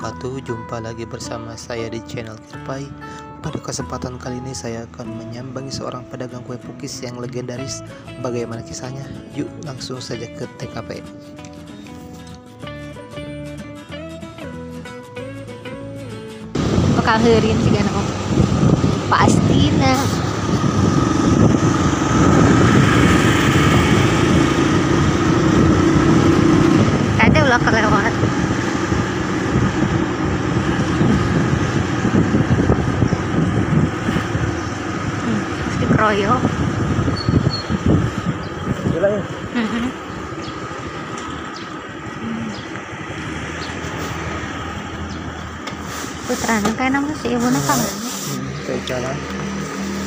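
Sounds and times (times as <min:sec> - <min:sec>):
street traffic: 0:00.0 - 0:50.0
motorcycle engine running: 0:16.6 - 0:50.0.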